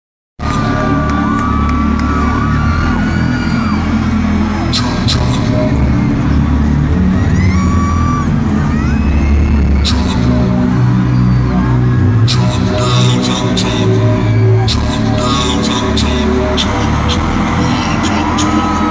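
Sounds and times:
bass-heavy hip-hop music: 0.4 - 18.9
voices over music: 0.4 - 18.9.

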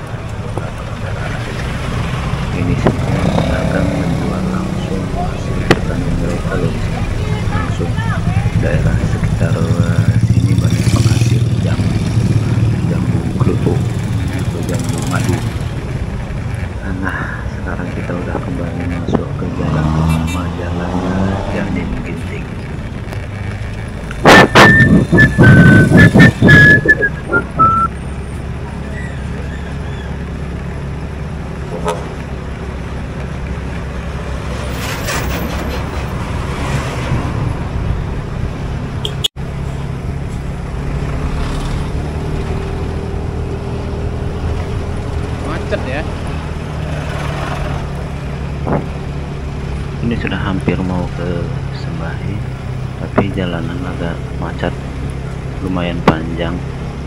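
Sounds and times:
road and wind noise: 0.0 - 57.0
motorcycle engine running: 6.8 - 16.8
high whistling tone: 24.3 - 27.9.

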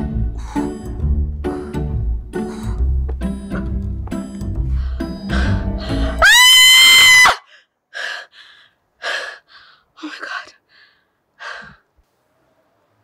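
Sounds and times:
music: 0.0 - 6.2
heavy gasping breaths: 2.4 - 3.8, 4.6 - 6.2, 7.5 - 10.0.

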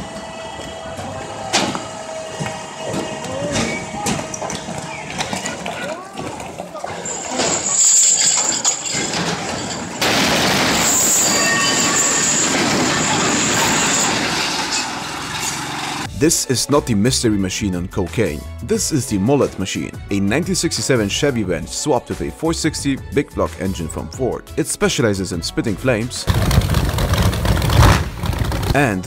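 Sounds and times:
steady machine hum: 0.0 - 5.5
loud harsh noise: 0.0 - 5.8, 7.0 - 16.1
people shouting: 0.0 - 7.6.

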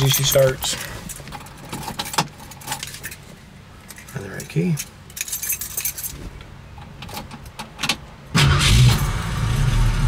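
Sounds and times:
keys jangling: 0.0 - 3.2, 3.9 - 6.2
car engine starting and idling: 7.1 - 10.0.

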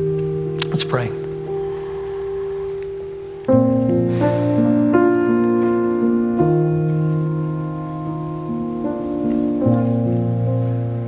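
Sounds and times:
sustained keyboard chord: 0.0 - 11.0.

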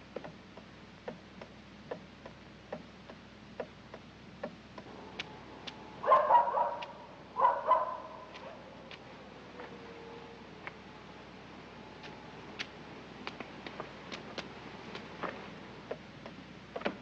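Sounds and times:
soft ticking: 0.1 - 5.8
dog barking: 6.0 - 8.7.

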